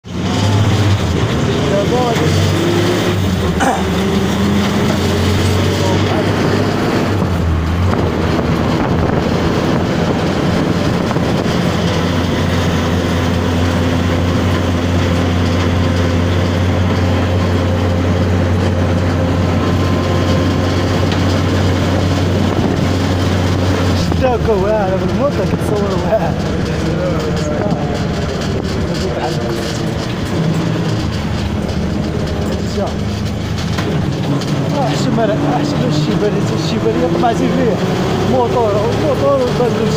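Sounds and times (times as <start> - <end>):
wind rushing over microphone: 4.0 - 32.4.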